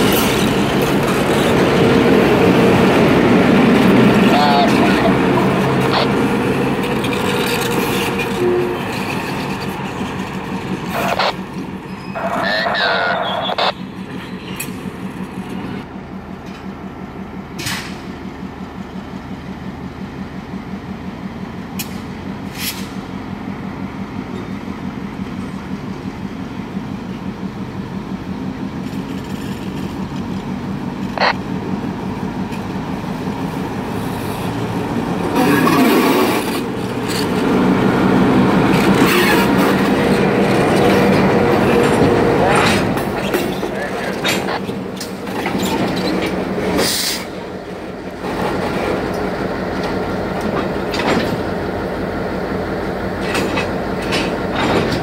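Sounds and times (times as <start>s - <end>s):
diesel locomotive engine running: 0.0s - 55.0s.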